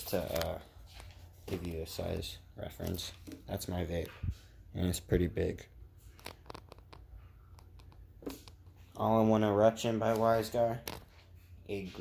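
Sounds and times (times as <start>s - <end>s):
objects being moved clicking: 6.0s - 8.9s.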